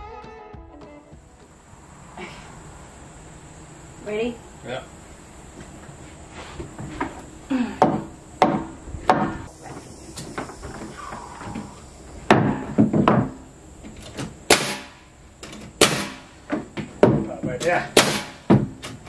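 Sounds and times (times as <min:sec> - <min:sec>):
pneumatic nailer bangs: 0:12.3 - 0:13.4, 0:14.0 - 0:19.0.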